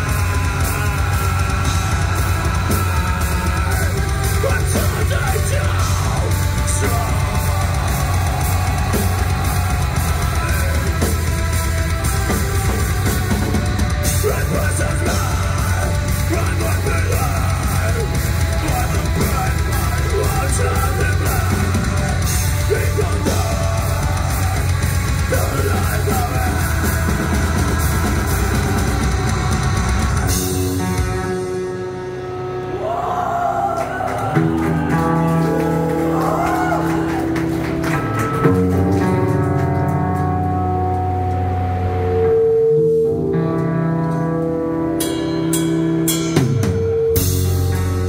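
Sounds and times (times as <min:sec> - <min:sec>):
vocalist screaming: 0:00.0 - 0:11.0, 0:32.7 - 0:37.4
drum kit: 0:00.0 - 0:32.2, 0:33.7 - 0:42.3, 0:43.1 - 0:48.0
distorted guitars: 0:00.0 - 0:48.0
loud live rock band: 0:00.0 - 0:48.0.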